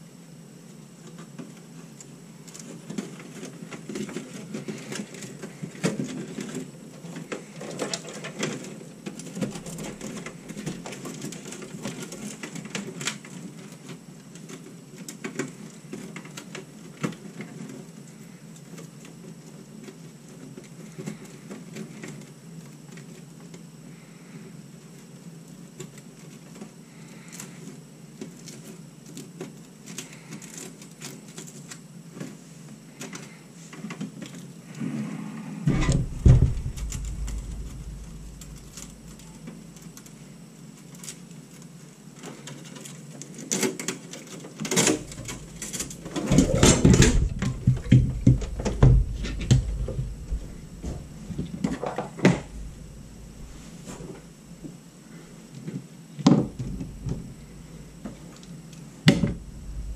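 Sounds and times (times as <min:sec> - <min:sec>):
small clicks and rustles: 0:00.6 - 0:34.8, 0:35.8 - 0:54.8
metal case knocking and clattering: 0:35.7 - 0:39.3, 0:44.8 - 0:53.8, 0:56.3 - 0:57.8
loud knock and rumble: 0:35.7 - 0:39.5, 0:45.0 - 0:54.1, 0:56.3 - 0:58.2, 0:59.1 - 0:59.9.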